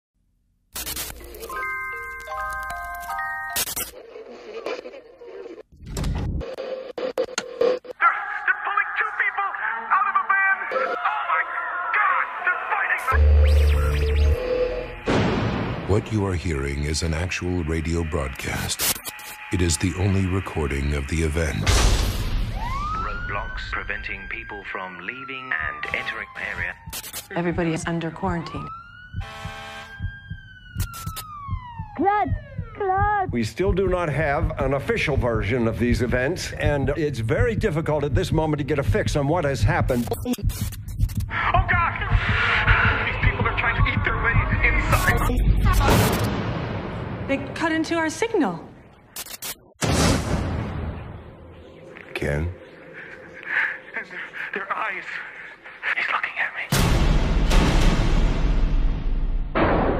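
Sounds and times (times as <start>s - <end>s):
static crackles: 0.7s - 7.9s, 17.2s - 19.5s, 26.0s - 27.4s
voice over noisy radio: 8.0s - 13.2s, 23.2s - 27.8s, 53.5s - 56.7s
wailing siren-like tone: 13.1s - 15.1s, 22.4s - 33.3s
low pulsing beat: 27.4s - 45.9s.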